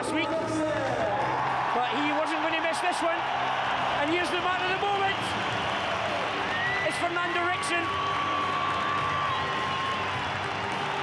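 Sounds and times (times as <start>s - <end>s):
crowd applauding and cheering: 0.0s - 11.0s.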